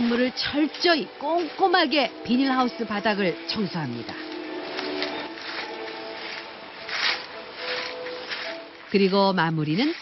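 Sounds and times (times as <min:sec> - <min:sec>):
soft instrumental music: 0:00.0 - 0:10.0
sweeping dry dirt: 0:00.0 - 0:10.0.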